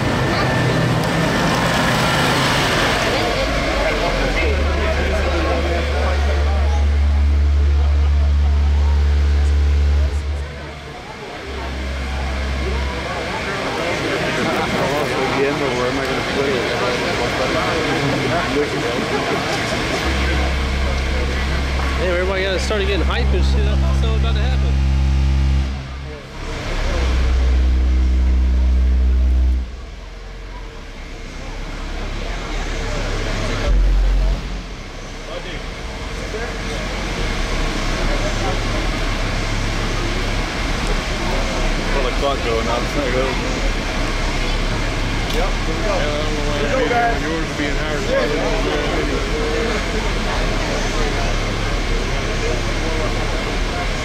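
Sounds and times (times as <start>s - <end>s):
very low subwoofer bass tones: 0.0s - 14.8s, 19.6s - 54.0s
crowd chatter: 0.0s - 54.0s.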